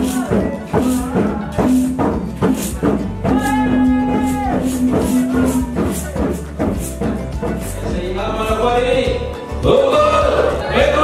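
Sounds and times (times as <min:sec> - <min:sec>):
rattling percussion beats: 0:00.0 - 0:11.0.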